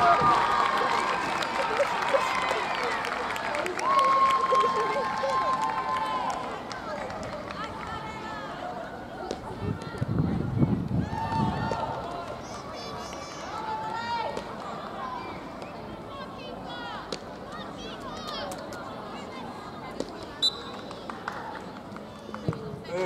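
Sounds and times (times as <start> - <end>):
crowd cheering: 0.0 - 9.3
crowd talking and calling out: 0.0 - 23.0.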